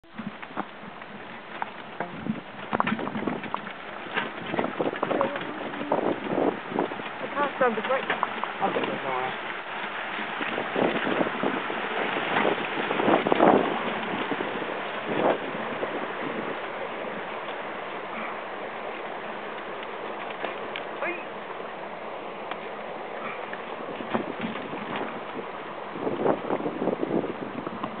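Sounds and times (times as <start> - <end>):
river water rushing and splashing: 0.0 - 28.0
wheels crunching over stones: 0.0 - 28.0.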